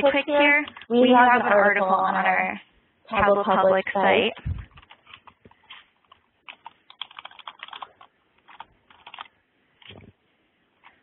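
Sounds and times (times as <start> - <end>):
typing on computer keyboard: 4.6 - 10.0.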